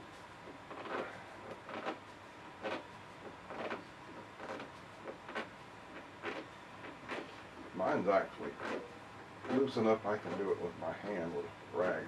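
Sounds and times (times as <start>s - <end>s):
cloth scraping on knob: 0.7s - 2.0s, 3.5s - 7.4s, 8.6s - 11.2s.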